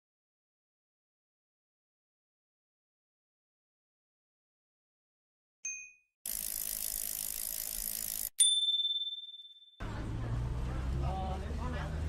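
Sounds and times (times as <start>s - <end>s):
bell-like ding: 5.7s - 6.1s, 8.4s - 9.8s
sharp bright ding: 8.4s - 9.7s.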